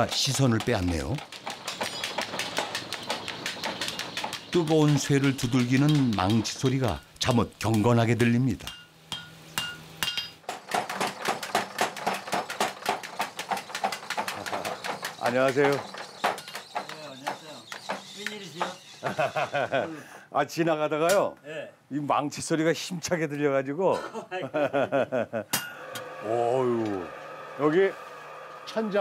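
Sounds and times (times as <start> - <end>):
hammer striking iron on anvil: 8.6 - 14.4, 25.5 - 26.0.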